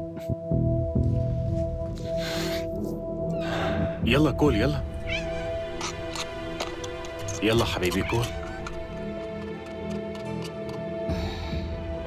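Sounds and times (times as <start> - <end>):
background music: 0.0 - 12.0
cat meowing: 5.0 - 5.6.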